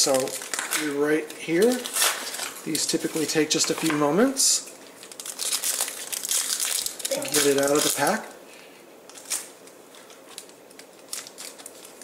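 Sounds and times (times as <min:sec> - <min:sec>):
foil wrapper crinkling: 0:00.0 - 0:08.3, 0:09.1 - 0:12.0.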